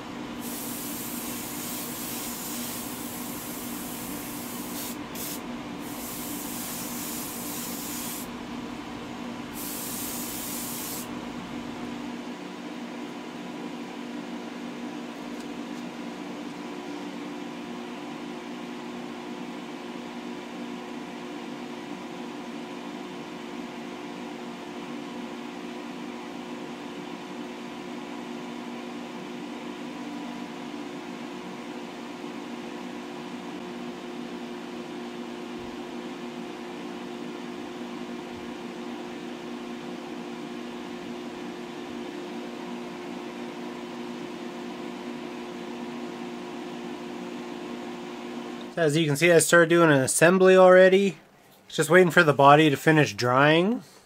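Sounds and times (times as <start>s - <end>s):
extraction fan running: 0.0s - 54.0s.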